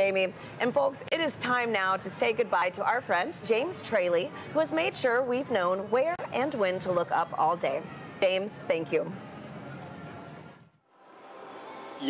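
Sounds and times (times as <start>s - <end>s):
faint broadcast background noise: 0.0s - 12.0s.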